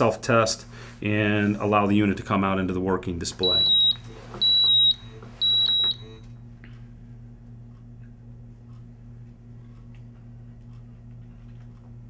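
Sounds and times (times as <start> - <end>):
steady low hum: 0.0 - 12.0
high-pitched alarm beep: 3.4 - 6.3.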